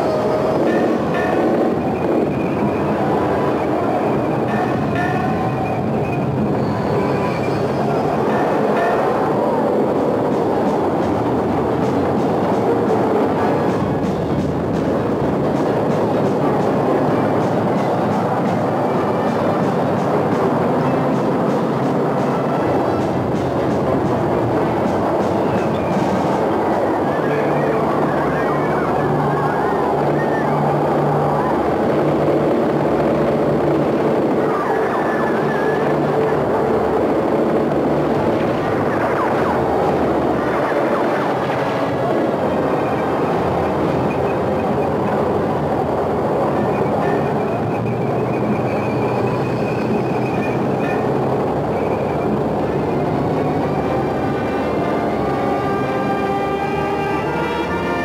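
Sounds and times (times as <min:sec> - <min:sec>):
heavy vehicle rumble and clatter: 0:00.0 - 0:58.0.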